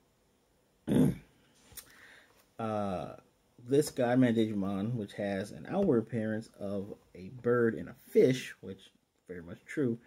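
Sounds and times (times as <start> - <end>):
man clearing throat: 0.9 - 1.3.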